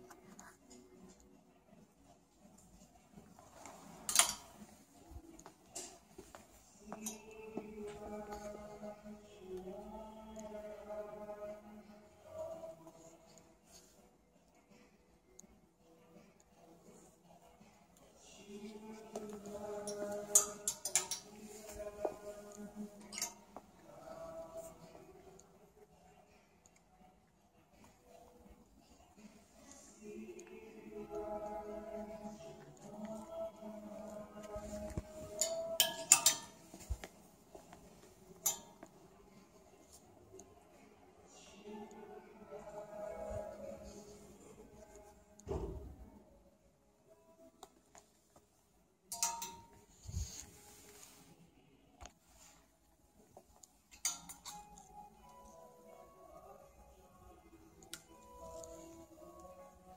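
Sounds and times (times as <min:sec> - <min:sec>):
clothes rustling on hangers: 0:00.0 - 0:14.1, 0:16.4 - 0:25.7, 0:27.7 - 0:45.4, 0:47.4 - 0:59.9
hanger clicks: 0:04.0 - 0:04.6, 0:19.2 - 0:21.8, 0:23.0 - 0:23.5, 0:35.3 - 0:37.0, 0:38.4 - 0:38.9, 0:49.1 - 0:49.9, 0:53.9 - 0:54.9.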